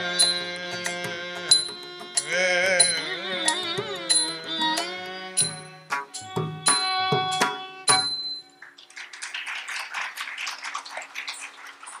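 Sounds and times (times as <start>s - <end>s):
percussion stroke ringing: 0.1s - 8.6s
audience applauding: 8.6s - 12.0s.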